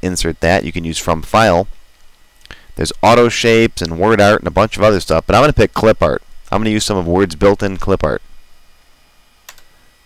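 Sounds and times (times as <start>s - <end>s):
person speaking: 0.0s - 1.7s, 2.5s - 8.3s
computer mouse click: 9.5s - 9.7s.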